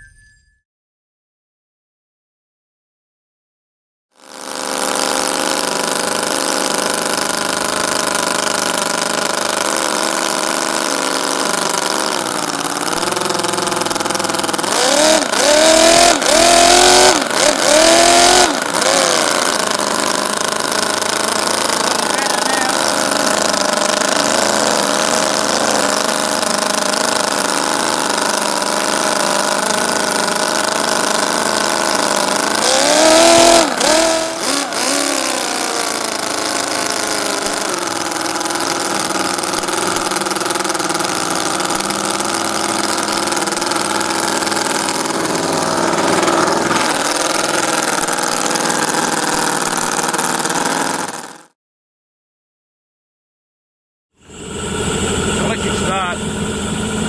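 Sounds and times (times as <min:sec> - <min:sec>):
miniature engine running and revving: 0:04.1 - 0:51.6, 0:54.4 - 0:57.0.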